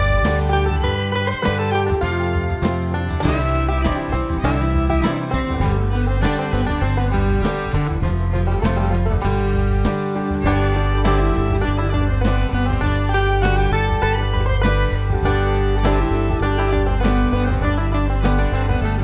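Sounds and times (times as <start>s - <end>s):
bluegrass tune on plucked strings: 0.0s - 19.0s.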